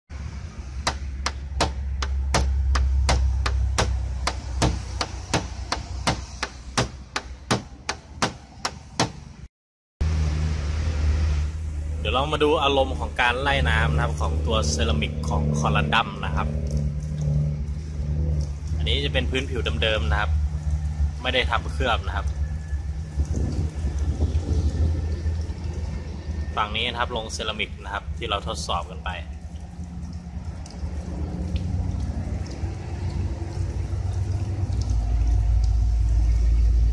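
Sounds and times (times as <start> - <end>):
water from hose pouring on car: 0.1 - 9.1, 10.0 - 36.9
wind rumble on microphone: 22.4 - 26.5.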